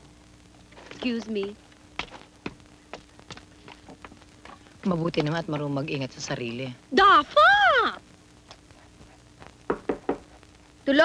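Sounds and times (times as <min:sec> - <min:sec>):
knocks on a door: 0:09.7 - 0:10.3.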